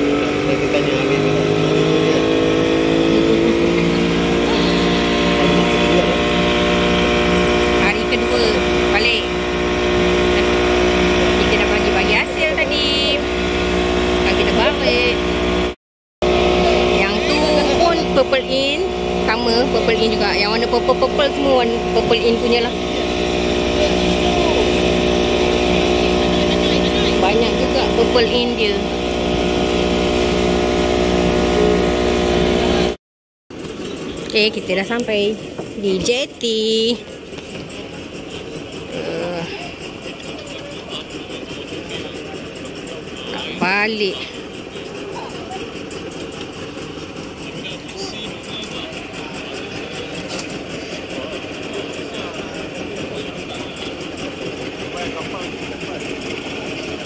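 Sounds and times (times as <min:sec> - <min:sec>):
boat engine running: 0:00.0 - 0:57.0
water rushing along hull: 0:00.0 - 0:57.0.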